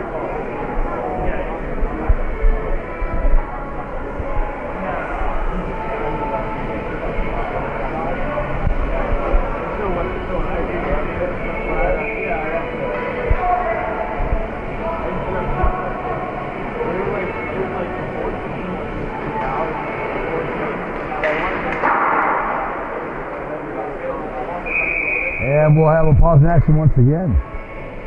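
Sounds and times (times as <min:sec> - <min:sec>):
faint music: 0:00.0 - 0:28.0
many voices talking: 0:00.0 - 0:28.0.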